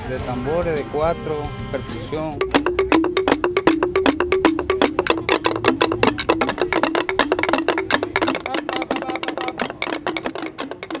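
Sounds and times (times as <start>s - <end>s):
bamboo tubes knocking on concrete: 2.0s - 11.0s.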